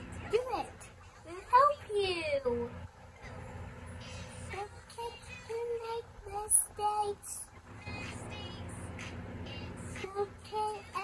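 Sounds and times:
children's song from speaker: 3.9 - 11.0.

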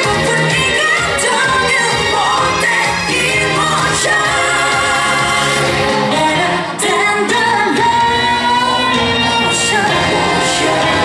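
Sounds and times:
pop song with vocals: 0.0 - 11.0.

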